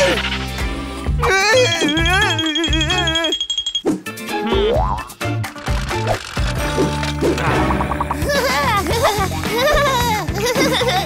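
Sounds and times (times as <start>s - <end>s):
cartoon music with steady beat: 0.0s - 11.0s.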